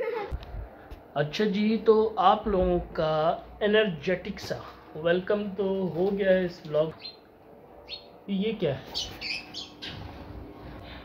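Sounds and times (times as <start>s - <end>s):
small bird chirping: 7.0s - 7.2s, 7.8s - 8.1s, 8.9s - 10.0s.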